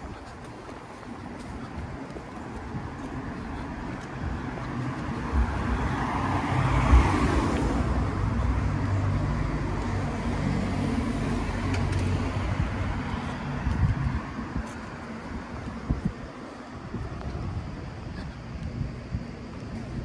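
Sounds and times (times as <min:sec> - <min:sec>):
tyre noise: 0:00.0 - 0:20.0.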